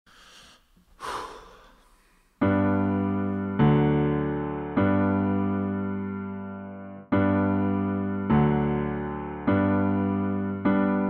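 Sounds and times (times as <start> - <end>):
person breathing: 0.1 - 2.4.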